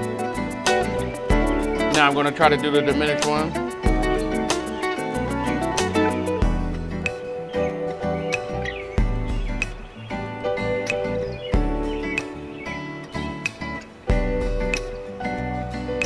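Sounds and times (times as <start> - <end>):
electronic keyboard chords: 0.0 - 16.0
looping backing track: 0.0 - 16.0.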